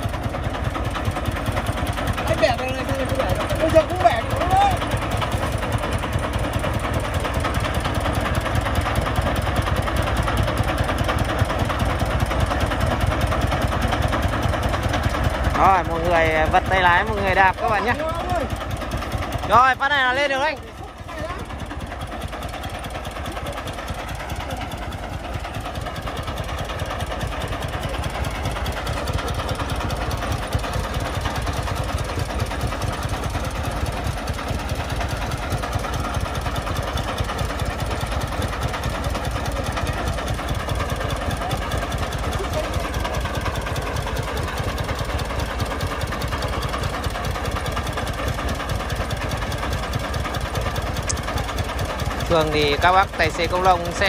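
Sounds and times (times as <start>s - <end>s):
diesel engine knocking: 0.0s - 54.0s.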